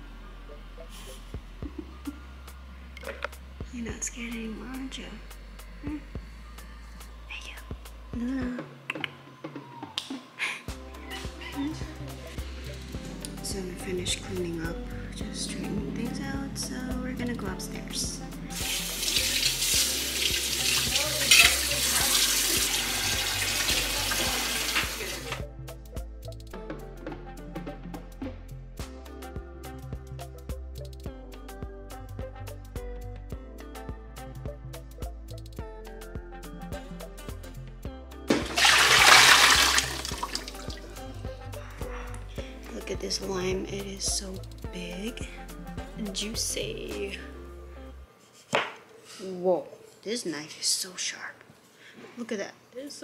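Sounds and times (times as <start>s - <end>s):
background music: 0.0s - 48.3s
dishes rinsed and scrubbed: 18.5s - 25.4s, 38.3s - 40.9s
tap water gushing into pot: 18.6s - 25.4s, 38.3s - 40.8s
tap running into sink: 38.3s - 40.5s.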